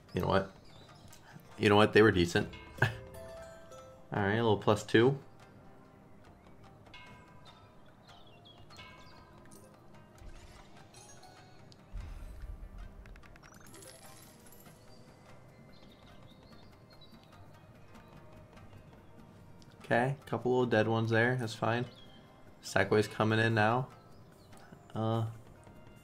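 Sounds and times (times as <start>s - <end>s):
slot game music: 0.0s - 26.0s.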